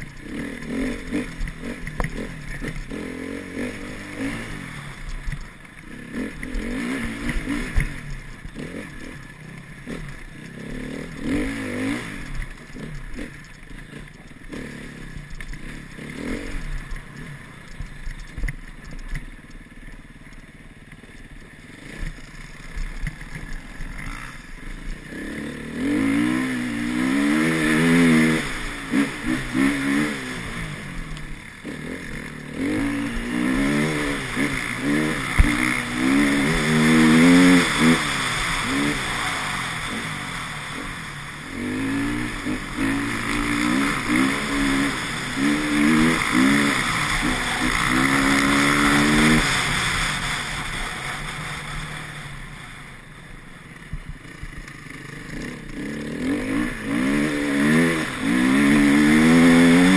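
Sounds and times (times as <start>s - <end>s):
dirt bike engine revving: 0.0s - 19.7s, 21.0s - 59.9s.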